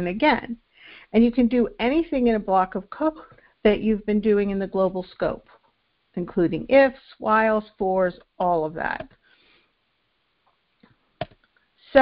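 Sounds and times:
woman speaking: 0:00.0 - 0:05.6, 0:06.2 - 0:09.1
woman breathing in: 0:00.7 - 0:01.1.

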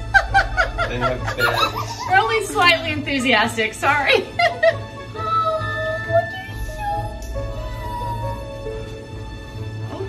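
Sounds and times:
person chuckling: 0:00.2 - 0:02.2.

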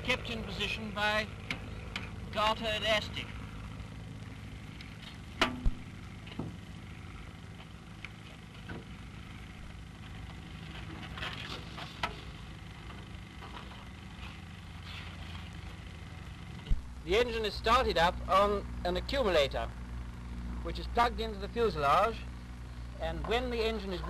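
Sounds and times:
low hum of old film recording: 0:00.0 - 0:24.0
sharp clicks and knocks: 0:04.8 - 0:06.6.

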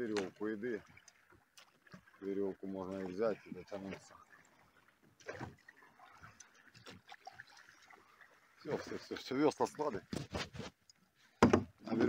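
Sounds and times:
light knocks of a boat: 0:00.0 - 0:01.0, 0:11.4 - 0:12.0.

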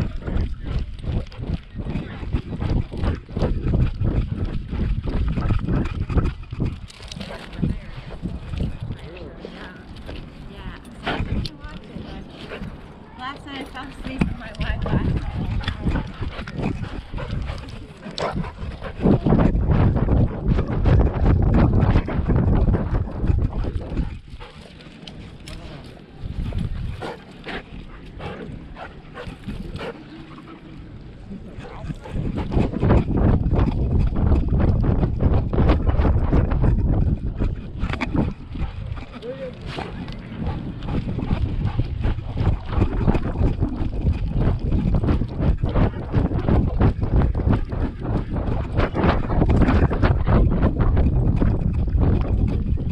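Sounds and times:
wind rumble on microphone: 0:00.0 - 0:52.9.

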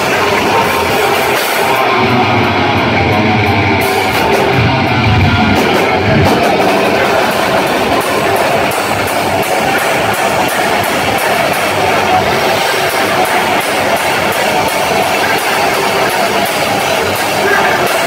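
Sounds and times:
cymbal beat: 0:00.0 - 0:18.0
distorted electric guitar: 0:00.0 - 0:18.0
drums: 0:00.0 - 0:18.0.

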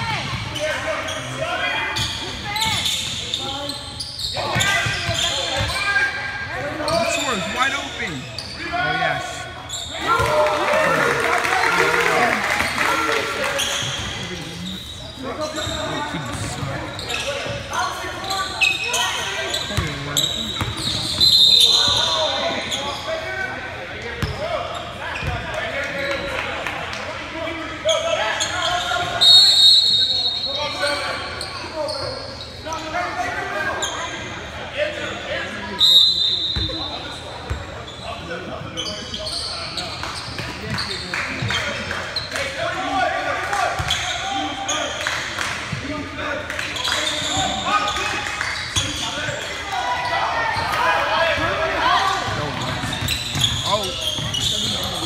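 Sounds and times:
sneaker squeaks: 0:00.0 - 0:10.3, 0:12.1 - 0:23.3, 0:24.2 - 0:25.5, 0:27.8 - 0:33.0, 0:33.6 - 0:34.3, 0:35.8 - 0:42.6, 0:43.8 - 0:44.9, 0:46.8 - 0:55.0.

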